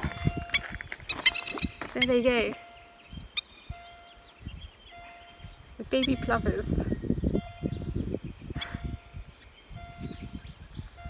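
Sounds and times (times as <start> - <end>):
lapwings calling: 0.4 - 6.7.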